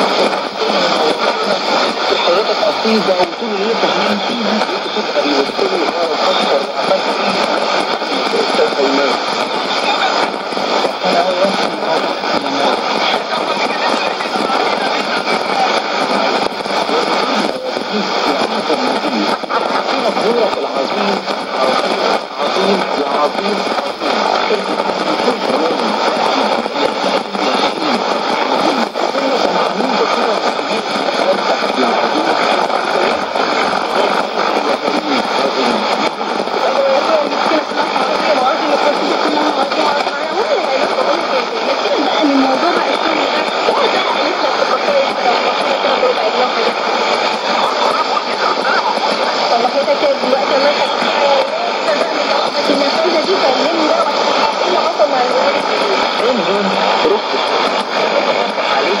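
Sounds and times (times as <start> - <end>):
faint interference tones: 0.0 - 59.0
radio speech: 0.0 - 59.0
radio static hiss: 0.0 - 59.0.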